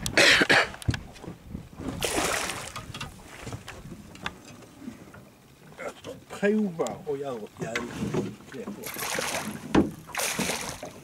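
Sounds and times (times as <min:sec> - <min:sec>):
small water slaps: 0:01.9 - 0:03.8, 0:08.8 - 0:11.0
fish splashing water: 0:02.0 - 0:03.5, 0:08.8 - 0:11.0.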